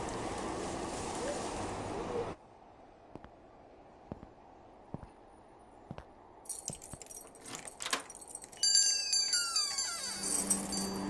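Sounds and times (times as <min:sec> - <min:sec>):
metallic jingling and clinking: 0:06.5 - 0:11.0
bright ringing chime: 0:08.5 - 0:11.0.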